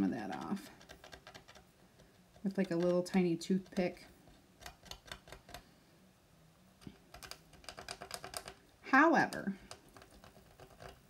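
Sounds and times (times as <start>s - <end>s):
toothpick scratching on wood: 0.0s - 5.6s, 7.1s - 8.6s, 9.7s - 11.0s.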